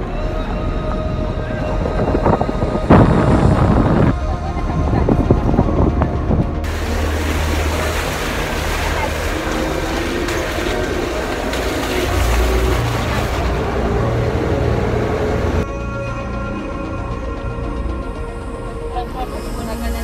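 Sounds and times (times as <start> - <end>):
engine rumbling under load: 0.0 - 20.0
tyres churning mud and water: 1.2 - 15.6.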